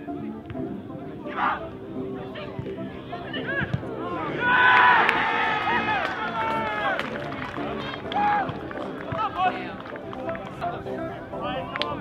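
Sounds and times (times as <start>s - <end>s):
people shouting: 1.3s - 1.7s, 3.3s - 9.4s.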